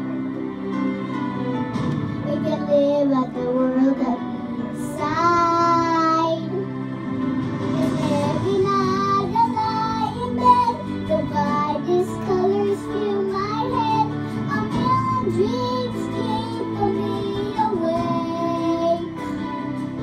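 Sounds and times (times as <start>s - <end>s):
instrumental backing track: 0.0s - 20.0s
boy singing a slow ballad: 2.2s - 6.7s, 7.8s - 19.5s.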